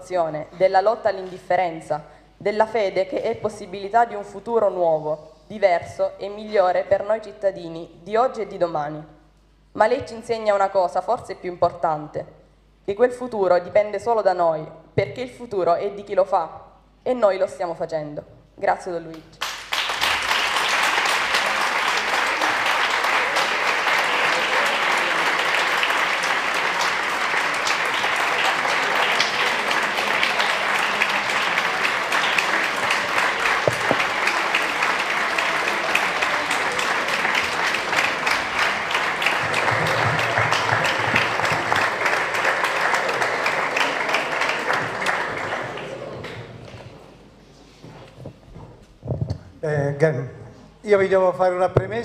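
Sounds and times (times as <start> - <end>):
large audience applauding: 19.4 - 46.9.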